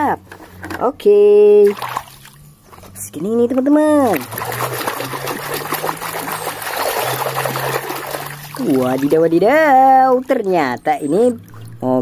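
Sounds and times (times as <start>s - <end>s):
water splashing in plastic basin: 1.6s - 3.0s, 3.9s - 10.4s.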